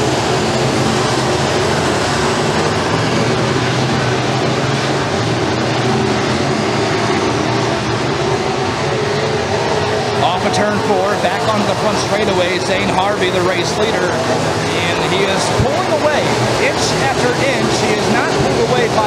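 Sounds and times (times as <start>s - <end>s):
race car engines at speed: 0.0s - 19.0s.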